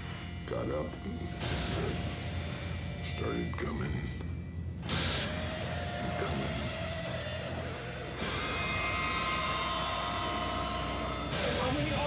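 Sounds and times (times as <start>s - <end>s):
low drone: 0.0s - 12.0s.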